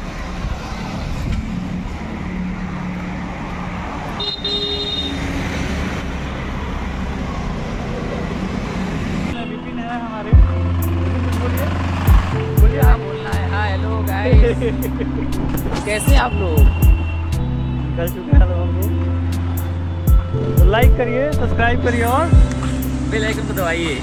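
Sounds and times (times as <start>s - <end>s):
road traffic passing: 0.0s - 24.0s
vehicle horn toot: 4.2s - 5.2s
music with heavy bass beat: 10.4s - 13.4s, 14.1s - 17.5s, 18.1s - 21.0s, 22.1s - 23.7s.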